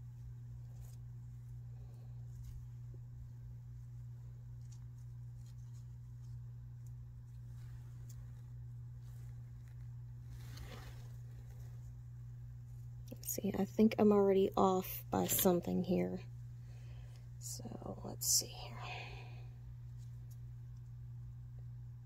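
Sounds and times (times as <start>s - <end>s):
soft brushing: 0.0s - 13.1s
steady low hum: 0.0s - 22.0s
gloved hands rustling paper: 0.1s - 13.0s.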